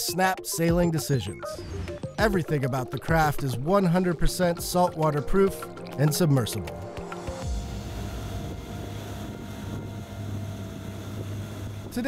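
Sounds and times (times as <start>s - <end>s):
soft background music: 0.0s - 12.0s
water noise: 4.1s - 12.0s
motorboat engine humming: 5.2s - 12.0s.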